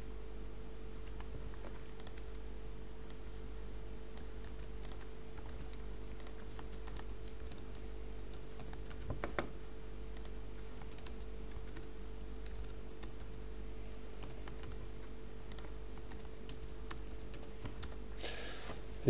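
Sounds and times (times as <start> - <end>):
low electrical hum: 0.0 - 19.0
typing on computer keyboard: 1.0 - 2.3, 4.1 - 9.6, 10.2 - 13.4, 14.2 - 14.8, 15.5 - 18.0.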